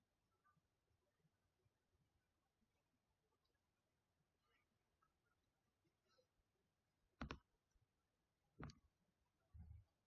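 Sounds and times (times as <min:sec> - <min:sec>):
computer mouse clicks: 0:07.2 - 0:07.5.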